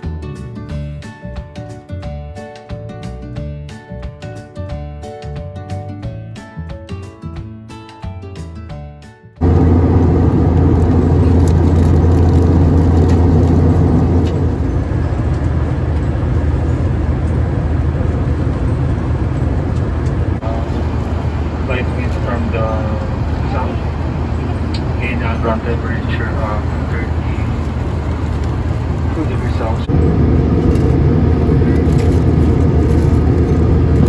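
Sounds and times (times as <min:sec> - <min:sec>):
airliner cabin roar: 0:09.4 - 0:34.0.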